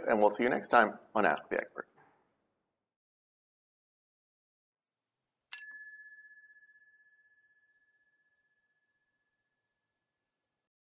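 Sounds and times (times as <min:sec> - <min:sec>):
bell-like chime: 0:05.5 - 0:09.9.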